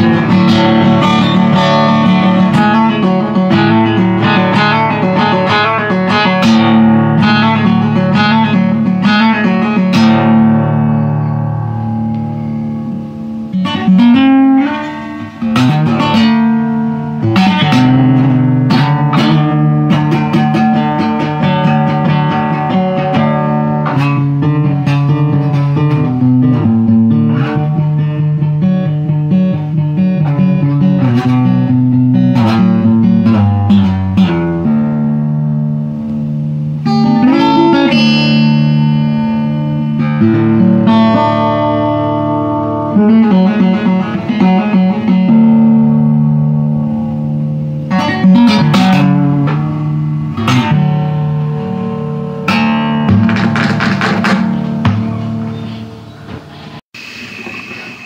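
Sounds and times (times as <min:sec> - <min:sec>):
solo acoustic guitar: 0:00.0 - 0:58.0.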